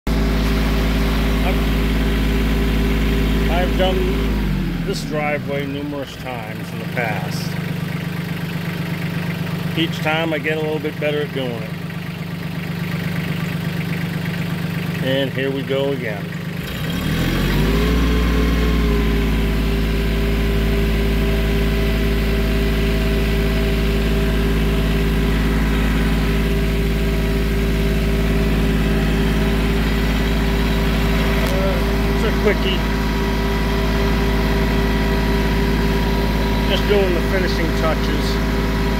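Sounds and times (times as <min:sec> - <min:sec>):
tractor engine running: 0:00.1 - 0:38.9.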